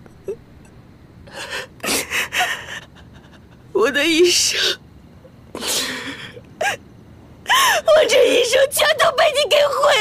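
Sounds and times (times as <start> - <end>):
woman sobbing: 1.3 - 3.8, 5.6 - 6.8, 7.4 - 8.4.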